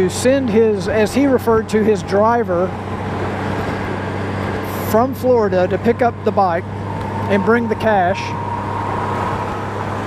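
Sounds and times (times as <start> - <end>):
motorcycle engine hum: 0.0 - 10.0
wind and road noise: 0.0 - 10.0.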